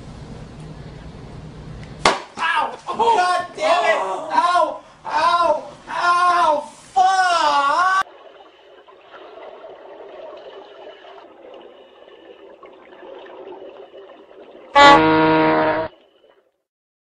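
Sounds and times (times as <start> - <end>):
loud horn-like blast: 14.8 - 15.9.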